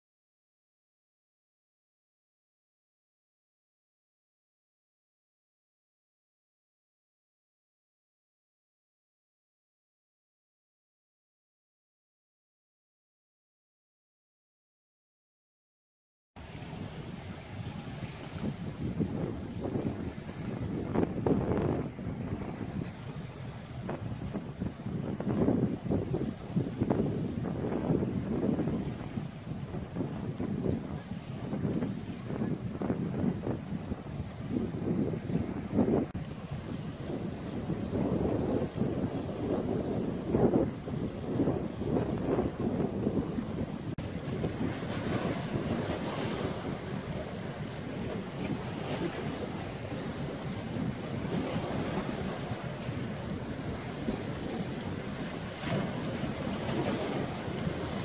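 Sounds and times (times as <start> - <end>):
waves washing against rocks: 16.4 - 58.0
wind buffeting microphone: 16.4 - 58.0.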